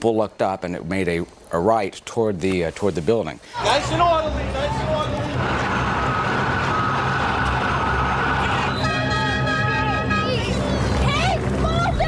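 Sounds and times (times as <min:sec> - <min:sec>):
engine running: 0:03.9 - 0:12.0
emergency vehicle siren tone: 0:05.3 - 0:10.6
held horn note: 0:08.4 - 0:10.7.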